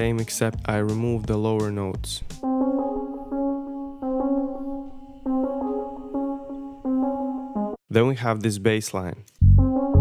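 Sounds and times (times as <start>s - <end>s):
electric piano chords: 2.4s - 7.8s.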